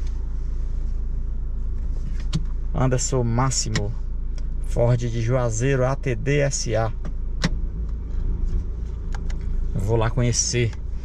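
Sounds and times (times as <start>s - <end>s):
pickup engine idling: 0.0s - 11.0s.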